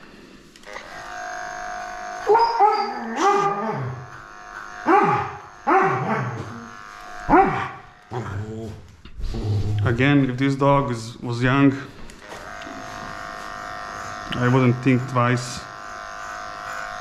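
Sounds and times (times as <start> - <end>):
electric clipper humming: 0.0 - 9.1, 10.0 - 17.0
dog whining: 2.2 - 4.2, 4.8 - 6.7, 7.3 - 8.7.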